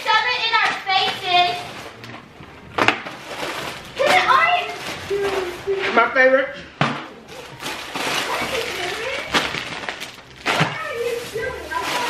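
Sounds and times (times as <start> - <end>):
plastic bag and wrappers crinkling: 0.0 - 2.1, 3.0 - 6.4, 7.3 - 12.0.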